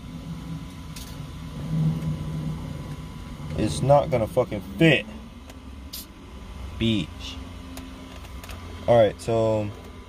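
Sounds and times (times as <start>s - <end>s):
vehicle engine low hum: 0.0s - 10.0s.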